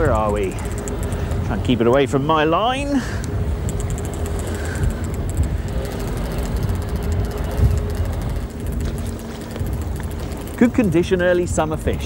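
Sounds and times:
boat engine: 0.0 - 12.0
faint hum: 0.0 - 12.0
wind rumble: 0.0 - 12.0.

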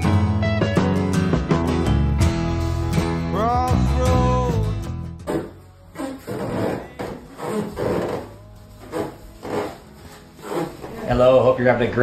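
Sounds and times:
bathtub squeaking and creaking: 5.2 - 12.0.

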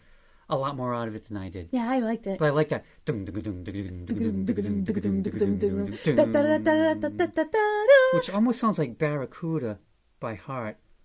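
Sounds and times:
person humming: 3.1 - 8.5.

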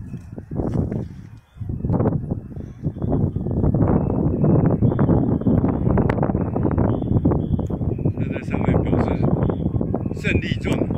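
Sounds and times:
wind buffeting microphone: 0.0 - 10.9.

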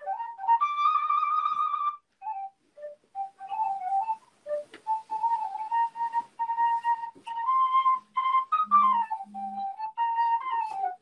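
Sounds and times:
flute playing: 0.0 - 11.0.

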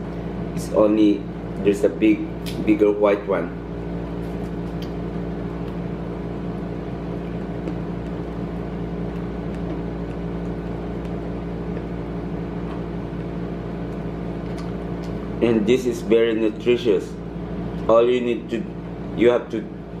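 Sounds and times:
machine hum: 0.0 - 20.0.

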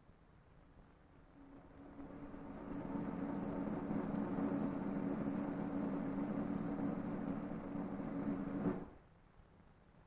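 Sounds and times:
steady low hum: 0.6 - 9.0.

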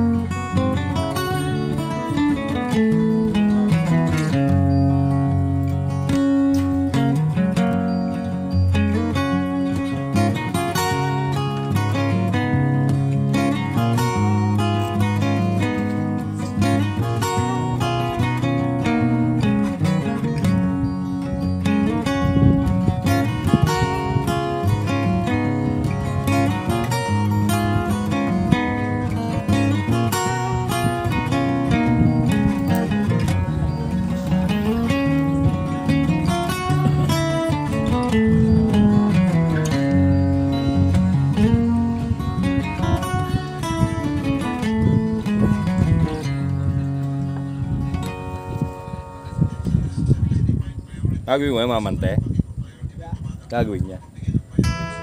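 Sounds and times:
guitar background music: 0.0 - 52.0, 54.4 - 55.0.

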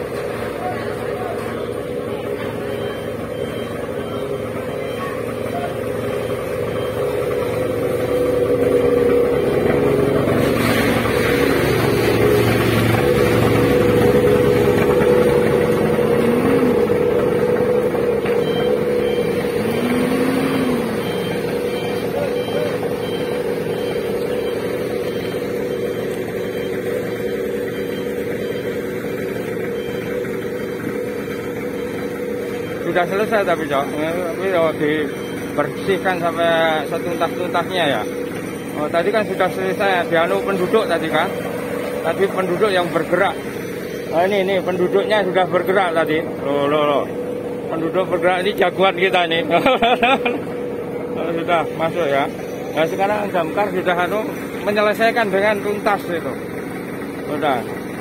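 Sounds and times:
fire truck engine running: 0.0 - 58.0.

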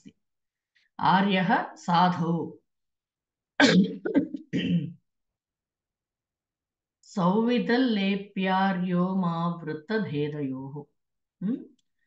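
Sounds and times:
person clearing throat: 3.6 - 5.0.

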